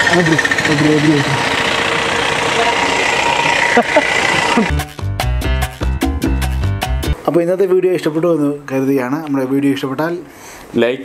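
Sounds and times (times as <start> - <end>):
traffic engine hum: 0.0 - 4.9
rhythmic music with a beat: 4.7 - 7.2.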